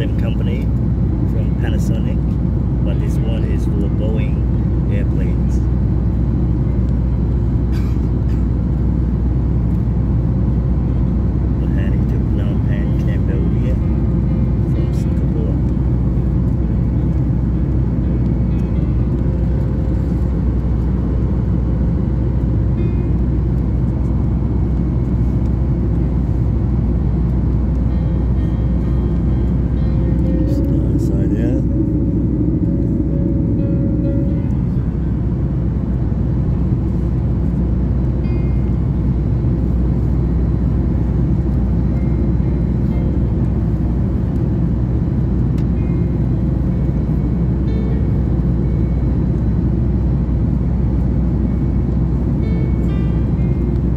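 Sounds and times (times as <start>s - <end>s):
airplane cabin engine rumble: 0.0s - 53.9s.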